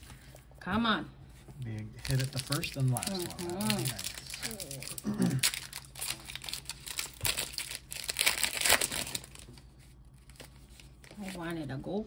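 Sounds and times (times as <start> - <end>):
foil wrapper crinkling and tearing: 1.6 - 11.5.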